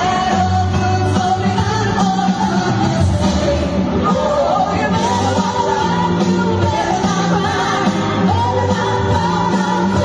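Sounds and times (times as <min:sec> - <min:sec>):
steady bass line: 0:00.0 - 0:10.0.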